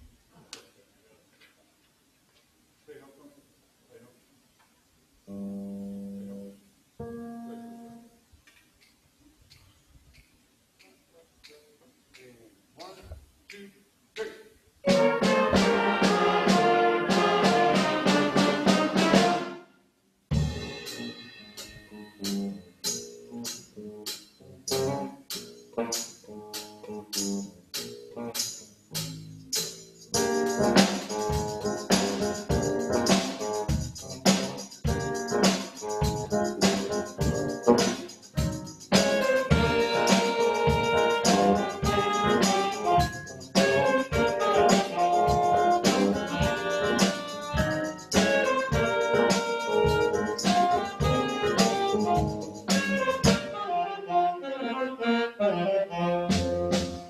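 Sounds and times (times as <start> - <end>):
jazz band playing: 14.8 - 19.6, 20.3 - 57.0.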